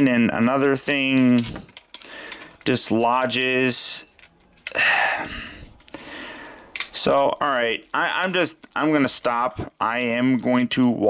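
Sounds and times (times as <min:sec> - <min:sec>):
plastic toy parts clicking: 0:01.4 - 0:02.7, 0:06.7 - 0:08.0
breathy sigh: 0:04.7 - 0:06.8.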